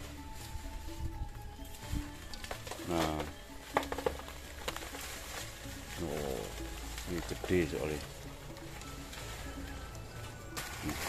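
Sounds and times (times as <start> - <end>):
dry leaves rustling and crackling: 0.0 - 11.0
leaves snapping: 0.0 - 11.0.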